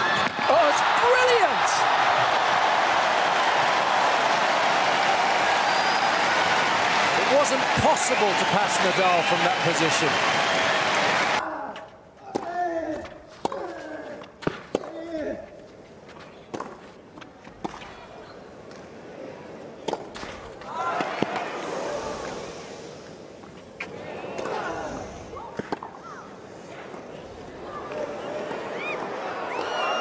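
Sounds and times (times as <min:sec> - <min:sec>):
crowd voices: 0:00.0 - 0:11.4, 0:20.6 - 0:30.0.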